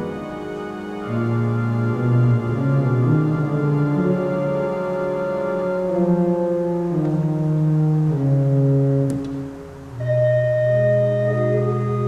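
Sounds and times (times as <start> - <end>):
pipe organ low chords: 0.0 - 12.0.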